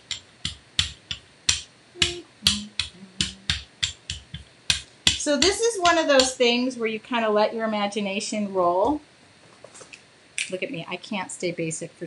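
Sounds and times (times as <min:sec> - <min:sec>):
rubber brayer clicking over mesh: 0:00.0 - 0:05.6.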